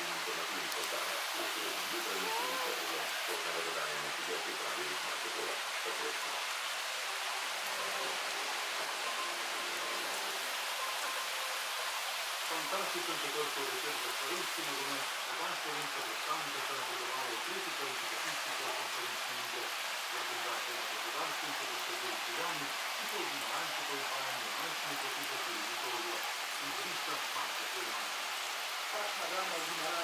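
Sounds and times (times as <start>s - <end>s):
indistinct voices talking: 0.0s - 6.3s
rain-like hiss: 0.0s - 30.0s.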